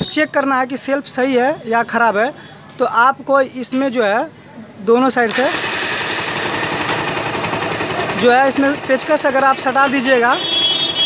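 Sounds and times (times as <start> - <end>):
starter motor cranking engine: 5.2 - 10.2.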